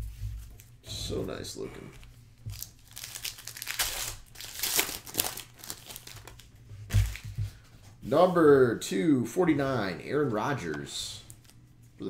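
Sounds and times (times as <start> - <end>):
foil wrapper tearing and crinkling: 2.5 - 7.2.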